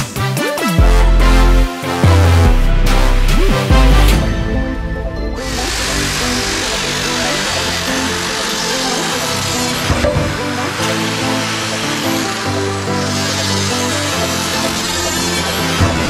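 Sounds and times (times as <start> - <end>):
electronic background music: 0.0 - 16.0
rotary sander grinding wood: 5.5 - 16.0.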